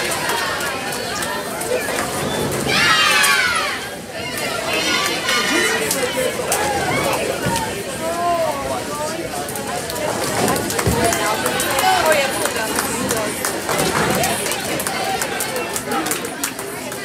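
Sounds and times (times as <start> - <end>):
people chattering: 0.0 - 17.0.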